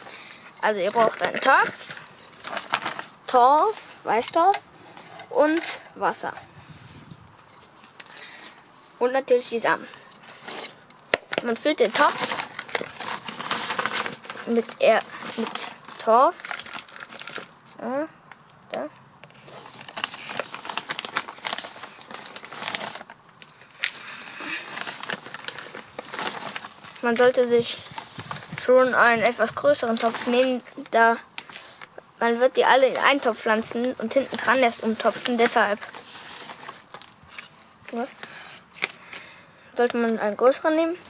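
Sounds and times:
dry peat crackling and rustling: 0.0s - 6.4s, 9.3s - 17.8s, 19.3s - 41.0s.

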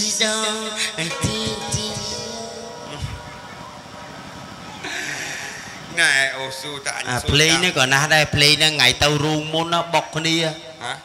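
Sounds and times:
ensemble music: 0.0s - 11.0s
man speaking into microphone: 5.9s - 11.0s.

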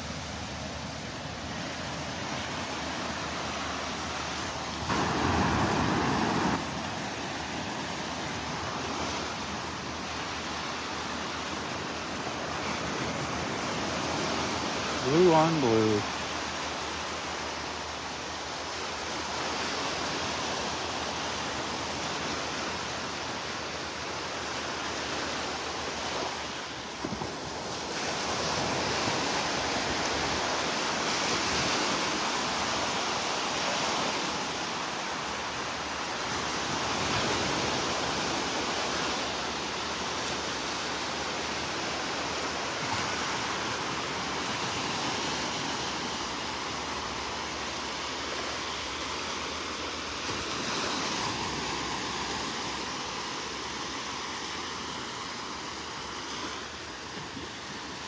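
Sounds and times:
small waves breaking: 0.0s - 58.0s.

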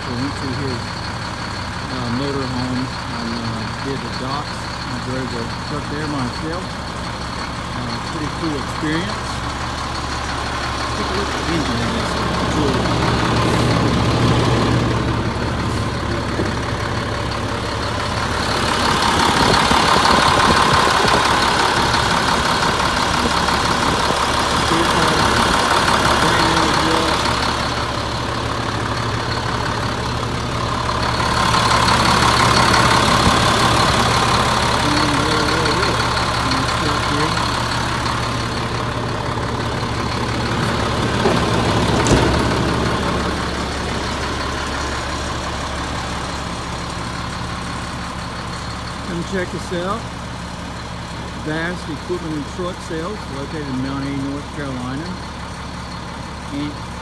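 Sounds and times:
truck engine idling: 0.0s - 57.0s.

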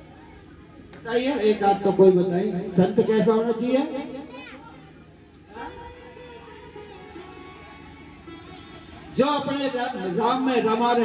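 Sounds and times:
faint audience voices: 0.0s - 11.0s.

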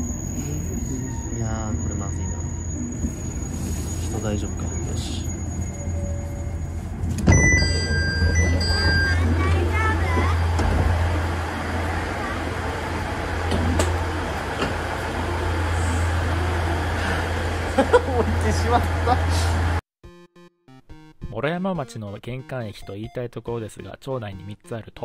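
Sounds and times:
diesel railcar idling hum: 0.0s - 19.8s
two-tone electronic chime: 7.3s - 9.4s.

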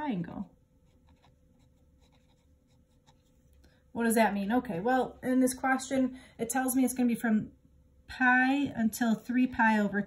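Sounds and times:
pen scratching on paper: 0.8s - 3.3s.

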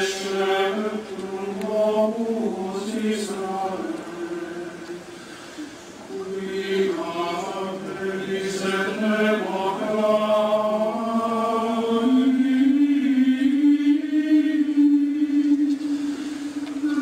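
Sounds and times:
choir chanting: 0.0s - 5.2s, 6.0s - 17.0s.

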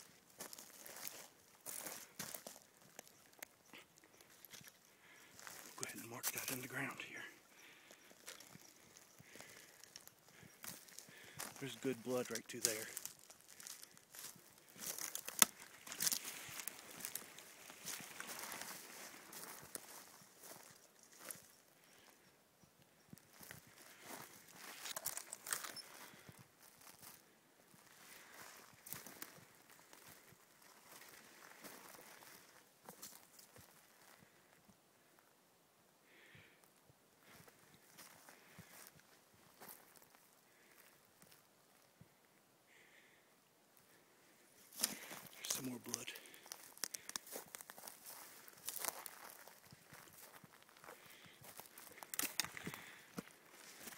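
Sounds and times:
footsteps on forest floor: 0.0s - 22.1s, 23.3s - 34.4s, 37.2s - 41.4s, 44.7s - 53.9s
twigs snapping: 12.9s - 19.5s, 46.4s - 47.9s, 51.5s - 53.0s.

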